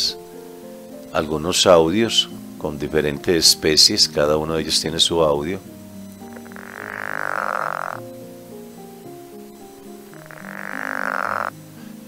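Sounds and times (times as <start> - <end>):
quiet background music: 0.0 - 12.0
frog croak: 5.6 - 11.8.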